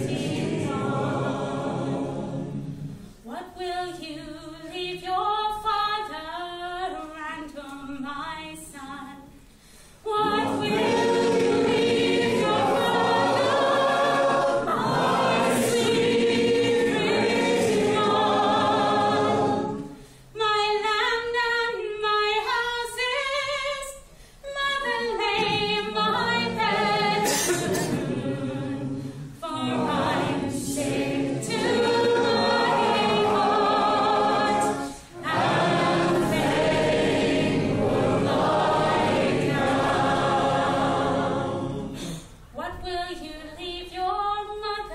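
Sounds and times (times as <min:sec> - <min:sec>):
group singing folk song: 0:00.0 - 0:08.8, 0:09.6 - 0:42.5.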